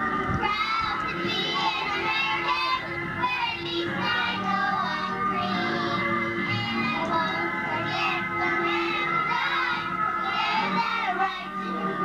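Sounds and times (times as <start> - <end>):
instrumental accompaniment: 0.0 - 12.0
children singing: 0.3 - 12.0.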